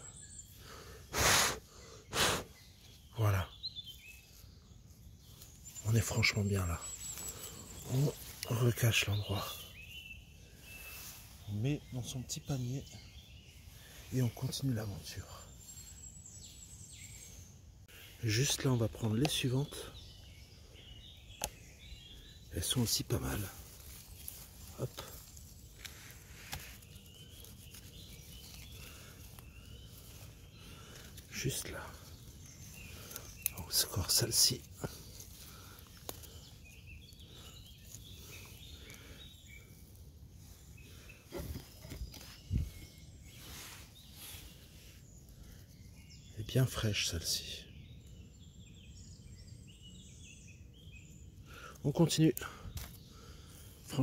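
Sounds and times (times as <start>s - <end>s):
faint bird chirps: 0.0s - 54.0s
short breaths close to microphone: 0.6s - 2.6s
rubbing in leaf litter: 22.9s - 36.5s, 40.9s - 45.0s.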